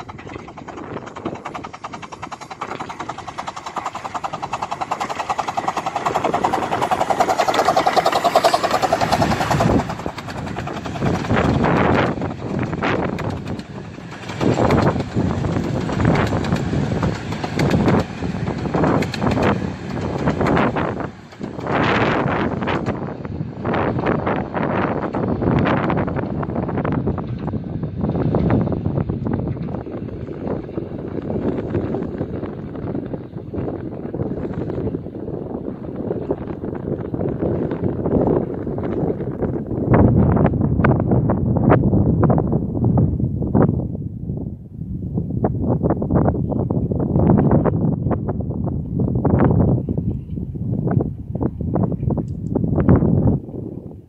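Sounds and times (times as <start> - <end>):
steam locomotive exhaust: 0.0 - 40.6
wind buffeting microphone: 0.0 - 54.0.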